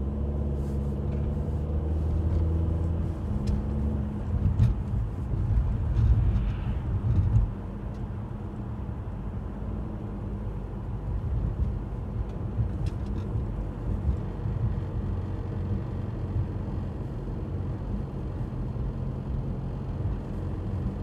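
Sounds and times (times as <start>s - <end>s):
car engine hum: 0.0s - 21.0s
engine and tyre rumble: 0.0s - 21.0s.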